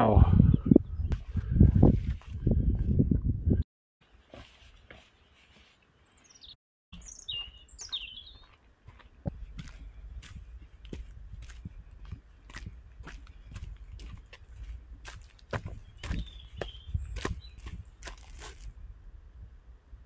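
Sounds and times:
footsteps on dirt trail: 0:01.1 - 0:03.0, 0:04.0 - 0:18.8.

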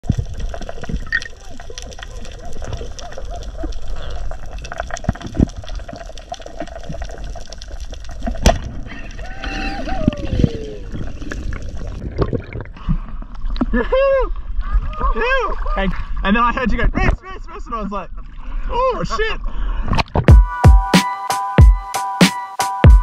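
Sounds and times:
low water rumble: 0:00.0 - 0:20.2
sharp crack: 0:08.2 - 0:09.0
muffled voice calling underwater: 0:09.1 - 0:11.2.

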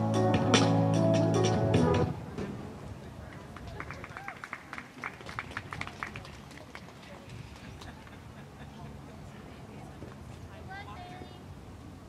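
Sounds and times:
scattered applause: 0:03.2 - 0:08.2
faint voices: 0:06.0 - 0:11.6.

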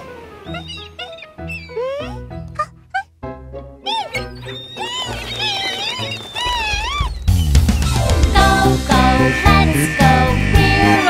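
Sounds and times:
cartoon seagull squawks: 0:00.0 - 0:03.1, 0:03.9 - 0:11.0
background music with bass line: 0:07.2 - 0:11.0.

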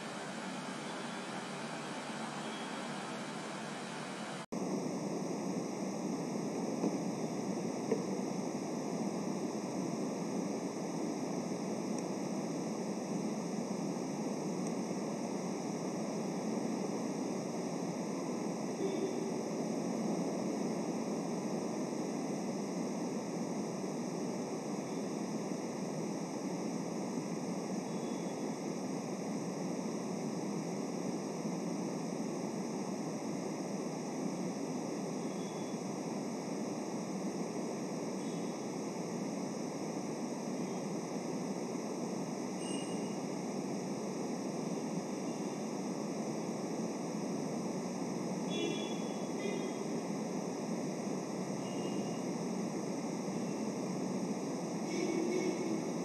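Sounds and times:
steady background hiss: 0:00.0 - 0:56.0.

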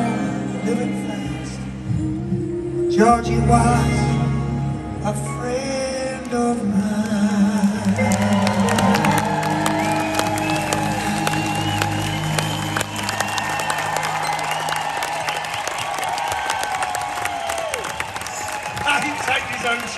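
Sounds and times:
crowd clapping: 0:06.2 - 0:19.9
crowd cheering: 0:07.8 - 0:19.9
crowd whistling: 0:08.0 - 0:19.9.

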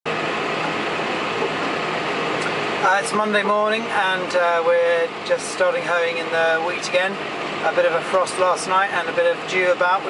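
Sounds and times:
tractor engine and cab drone: 0:00.1 - 0:10.0.

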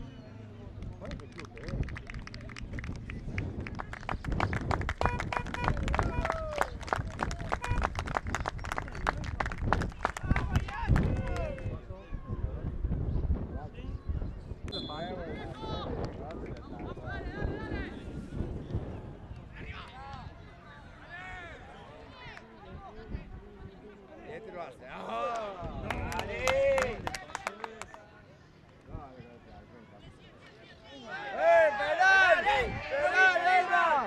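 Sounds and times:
rapid hand clapping: 0:01.0 - 0:11.6
shouts and calls from the pitch: 0:05.0 - 0:08.0, 0:10.0 - 0:12.8, 0:14.7 - 0:18.3, 0:19.4 - 0:24.2, 0:24.8 - 0:28.0, 0:29.4 - 0:34.0.

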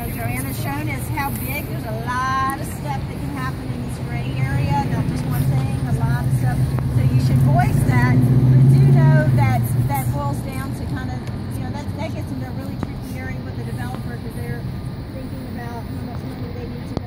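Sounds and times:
vehicle engine passing: 0:00.0 - 0:17.0.

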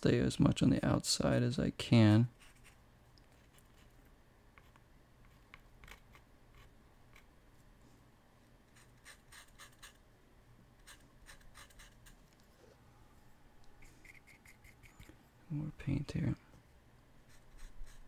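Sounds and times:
paintbrush scratching on paper: 0:02.4 - 0:02.8, 0:08.7 - 0:10.0, 0:10.8 - 0:12.2, 0:14.0 - 0:15.1, 0:17.3 - 0:18.0.

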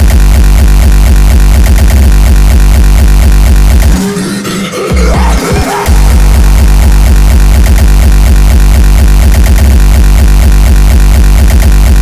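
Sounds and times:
distorted kick drums: 0:00.0 - 0:12.0.

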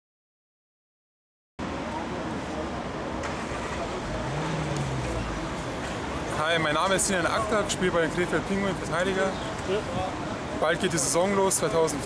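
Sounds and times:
road traffic noise: 0:01.6 - 0:12.0.

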